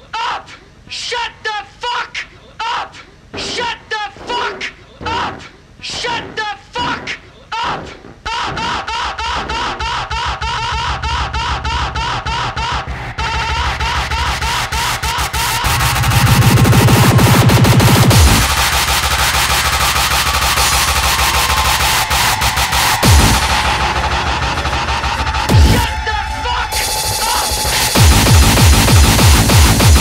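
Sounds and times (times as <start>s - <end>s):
rhythmic synth stabs: 7.8s - 30.0s
electronic dance beat: 8.4s - 30.0s
loud low bass: 11.1s - 30.0s.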